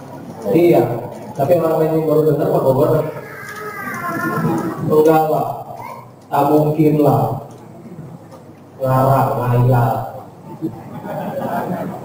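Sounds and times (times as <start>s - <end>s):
man speaking: 0.4s - 3.2s, 4.8s - 7.5s, 8.8s - 10.2s.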